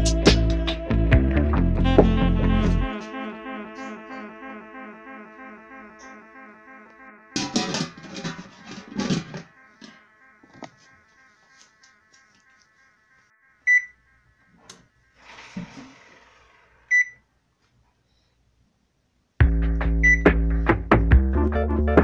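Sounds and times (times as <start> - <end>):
loud background music with beat: 0.0 - 2.2, 19.4 - 22.0
high electronic oven beeps: 13.6 - 14.9, 16.9 - 17.2, 20.0 - 20.3.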